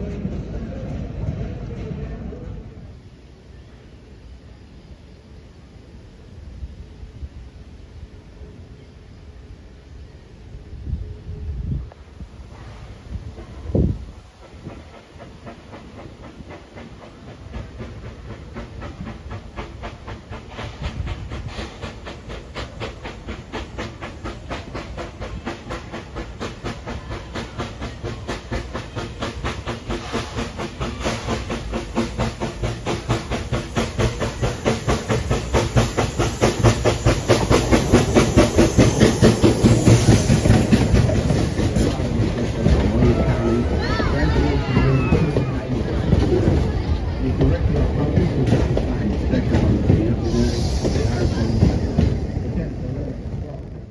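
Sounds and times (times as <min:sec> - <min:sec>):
steam hiss: 0:00.0 - 0:53.9
steam locomotive chuffing: 0:00.0 - 0:53.9
wheels clattering on rail joints: 0:12.6 - 0:53.9.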